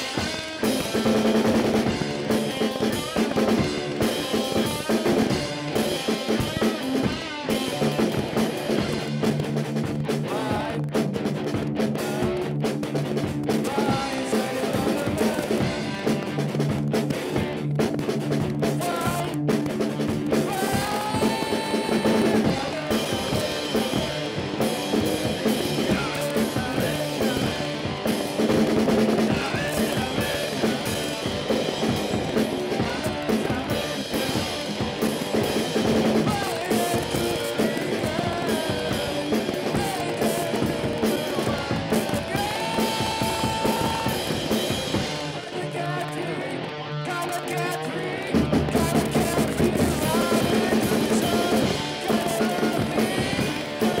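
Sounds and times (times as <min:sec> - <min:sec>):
drum kit with cymbals: 0:00.0 - 0:46.2, 0:47.1 - 0:54.0
electric guitar: 0:00.0 - 0:54.0.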